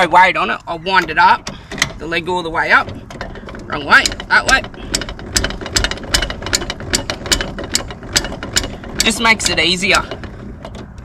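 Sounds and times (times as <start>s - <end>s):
crank mechanism clicking: 0.0s - 11.0s.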